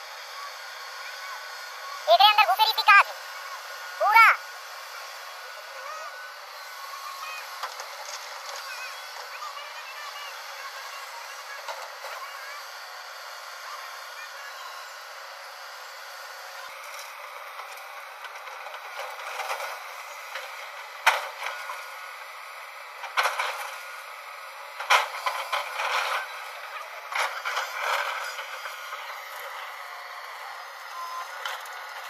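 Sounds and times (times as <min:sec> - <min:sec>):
excavator engine and hydraulics hiss: 0:00.0 - 0:02.4, 0:03.0 - 0:32.0.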